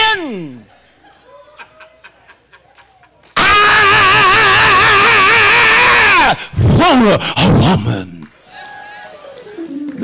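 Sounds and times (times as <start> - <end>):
man's distorted vocal cry: 3.4 - 8.3.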